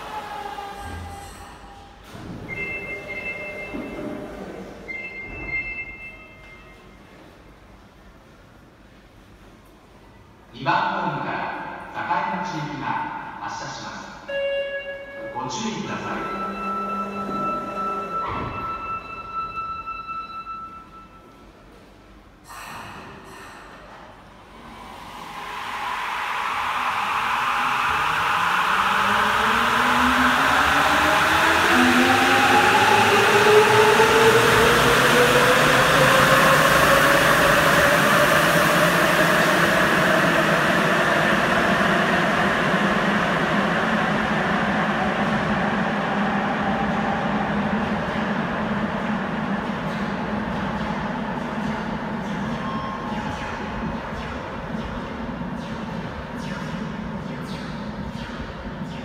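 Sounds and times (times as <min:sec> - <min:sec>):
station chime: 0:02.5 - 0:04.3, 0:14.3 - 0:21.4
train rumble: 0:21.6 - 0:56.2.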